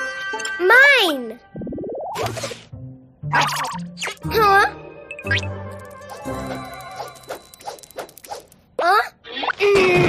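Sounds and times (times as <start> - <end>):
cartoon swishing strokes: 5.9 - 8.6.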